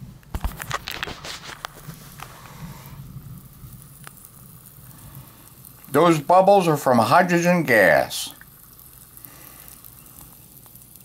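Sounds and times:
faint fizzing bubbles: 0:00.4 - 0:11.0.

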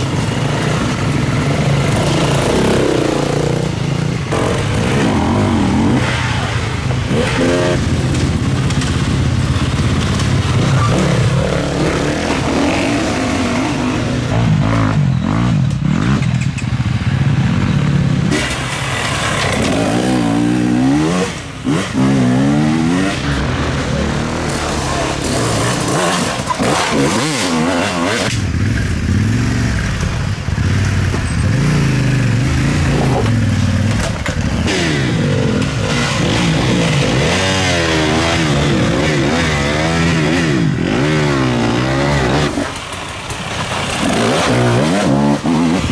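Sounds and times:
dirt bike engines revving: 0:00.0 - 0:45.9.

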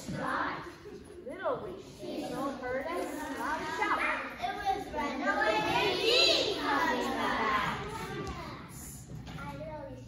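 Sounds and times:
young child speaking: 0:03.2 - 0:10.0.

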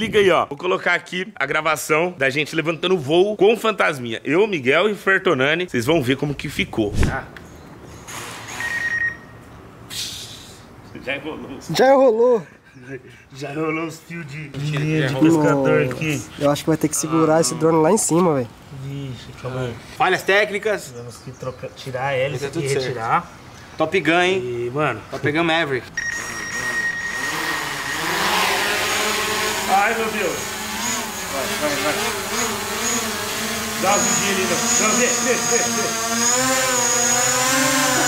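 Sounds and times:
electronic beep: 0:08.6 - 0:09.4, 0:26.0 - 0:28.2
hiss: 0:09.9 - 0:10.7
drone motors whirring: 0:26.0 - 0:38.0.

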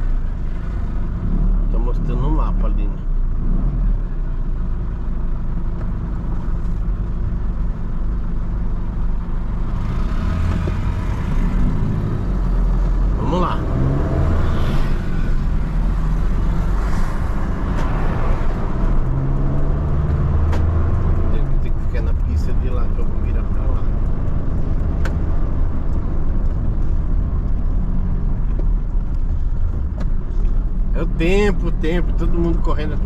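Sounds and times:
diesel van engine rumble: 0:00.0 - 0:33.0
road noise: 0:00.0 - 0:33.0.

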